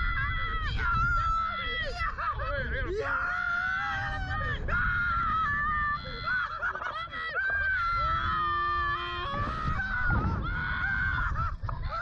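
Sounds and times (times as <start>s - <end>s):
young men screaming: 0.0s - 12.0s.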